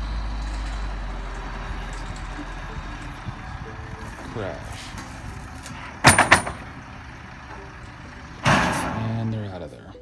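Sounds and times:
lumber bundle landing with bangs: 4.8s - 6.9s, 8.4s - 9.2s.

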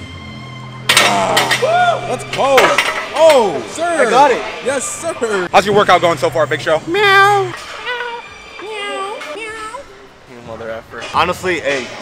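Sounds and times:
background music: 0.0s - 10.3s
men shouting and cheering: 1.0s - 5.1s.

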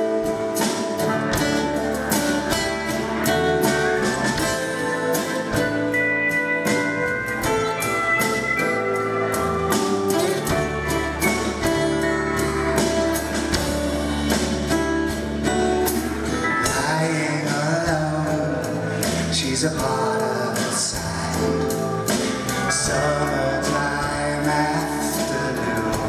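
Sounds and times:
acoustic guitar: 0.0s - 26.0s
drum kit beat: 0.0s - 26.0s
electric bass: 0.0s - 26.0s
keyboards: 0.0s - 26.0s
pedal steel guitar: 0.0s - 26.0s.

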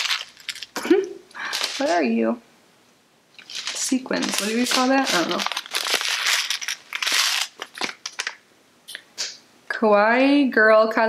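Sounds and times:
plastic pouch clicks and crackles: 0.0s - 0.8s, 3.4s - 8.4s
plastic pouch crinkling: 0.0s - 2.1s, 3.3s - 8.4s.

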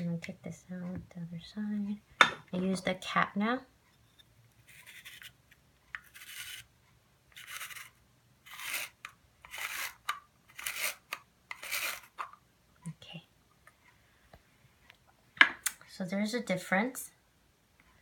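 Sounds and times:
spiral slicer scraping zucchini: 6.0s - 6.7s, 7.4s - 12.2s.

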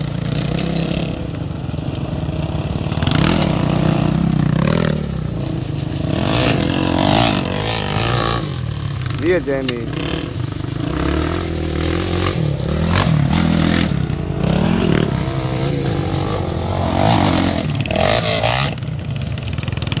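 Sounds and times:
quad engines revving: 0.0s - 20.0s
tyres on loose gravel: 0.0s - 20.0s.

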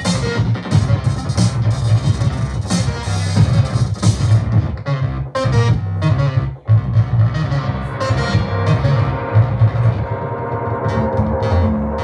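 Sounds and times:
heavy bass line: 0.0s - 12.0s
distorted synth tones: 4.3s - 12.0s.

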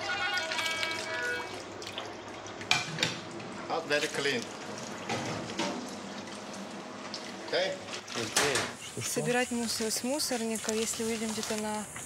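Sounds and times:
glasses being washed: 7.9s - 11.9s.

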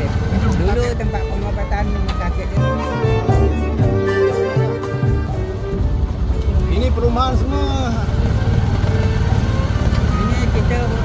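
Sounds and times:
motorcycle engine running: 0.0s - 4.0s, 5.0s - 11.0s.

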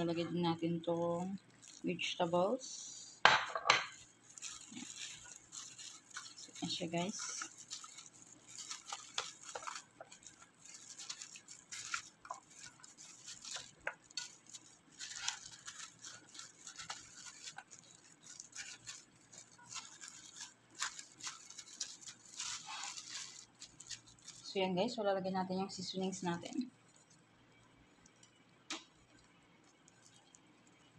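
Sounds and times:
plastic glove crinkling: 0.0s - 30.9s
soft rustles: 4.0s - 24.6s.

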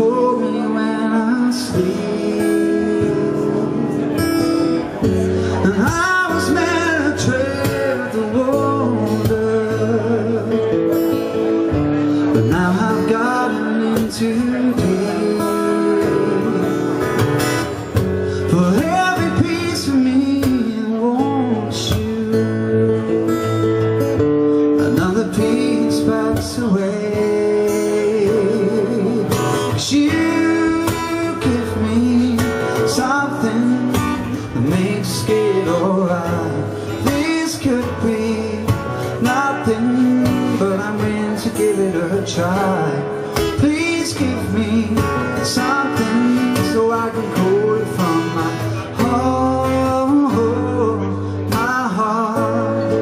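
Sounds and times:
man singing: 0.0s - 53.0s
strummed acoustic guitar: 0.0s - 53.0s.

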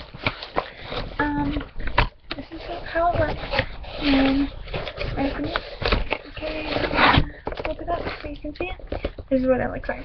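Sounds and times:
plastic wrapping rustling: 0.0s - 9.5s
woman speaking: 1.2s - 1.7s, 5.2s - 5.6s, 6.3s - 10.0s.

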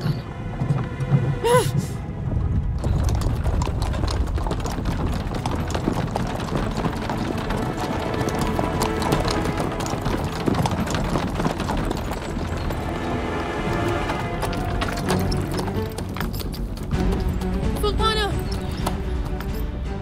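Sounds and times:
background music: 0.0s - 20.0s
hooves clopping on dirt road: 0.0s - 20.0s.

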